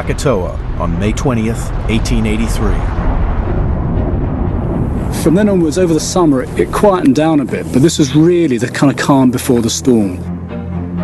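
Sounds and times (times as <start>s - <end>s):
low volcanic rumble: 0.0s - 9.4s.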